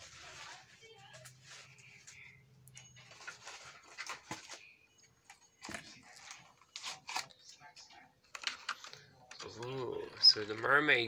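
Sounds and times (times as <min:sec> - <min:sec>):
toy packaging clicks and crinkles: 0:00.0 - 0:11.0.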